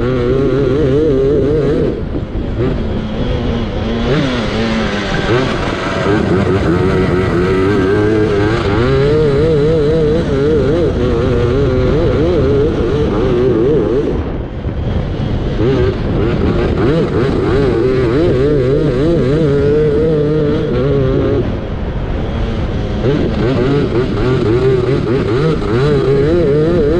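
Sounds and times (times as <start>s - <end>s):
lawnmower engine revving: 0.0s - 14.4s, 22.6s - 26.9s.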